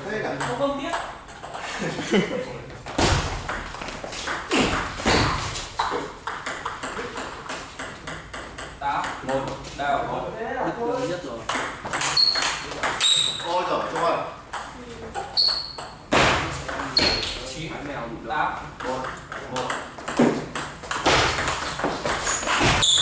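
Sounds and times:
table tennis ball knocks: 18.8 - 22.9.

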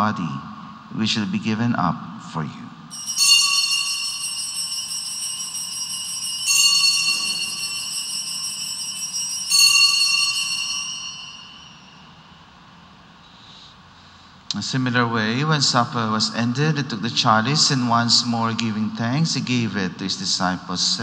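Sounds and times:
small hand bells ringing: 2.9 - 12.2.

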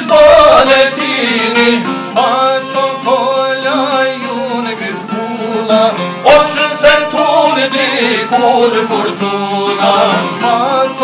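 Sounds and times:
man singing: 0.0 - 11.0
plucked lutes folk tune: 0.0 - 11.0.

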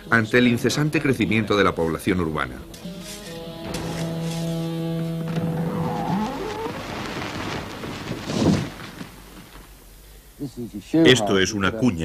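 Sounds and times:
held music chord: 2.4 - 5.8.

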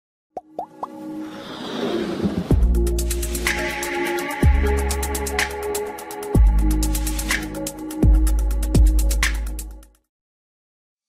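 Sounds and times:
plops rising in pitch: 0.4 - 1.0
music: 0.4 - 10.1
rising whoosh: 1.0 - 3.6.

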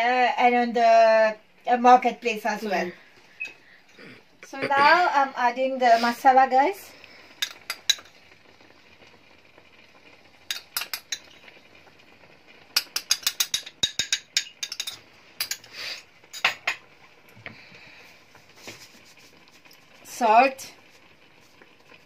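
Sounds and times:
metal spoon tapping a steel pan: 12.8 - 15.6.

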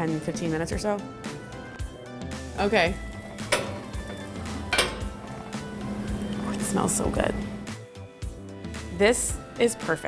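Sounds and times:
metal clanks: 3.2 - 5.7.

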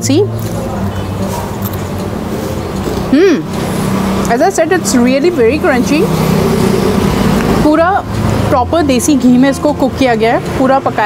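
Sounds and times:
woman humming mmm: 3.1 - 3.7.

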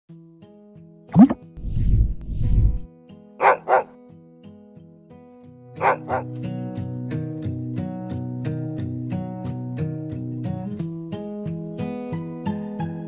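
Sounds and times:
low rumble: 1.2 - 2.9
dog barking: 3.4 - 3.9, 5.8 - 6.3
dog rising cry: 3.4 - 3.9, 5.8 - 6.3.

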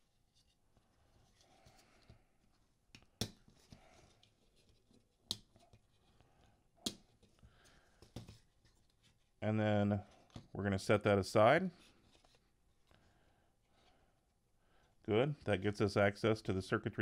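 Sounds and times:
plastic and rubber hoses handled: 11.7 - 13.1.

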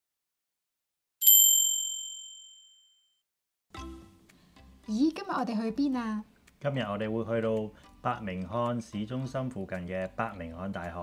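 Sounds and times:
bright bell-like ding: 1.2 - 3.0.

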